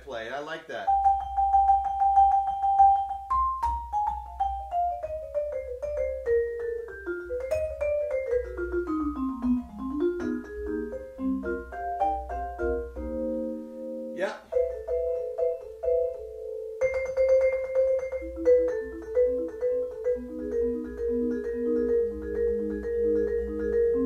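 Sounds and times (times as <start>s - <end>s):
vibraphone notes ringing: 0.8s - 24.0s.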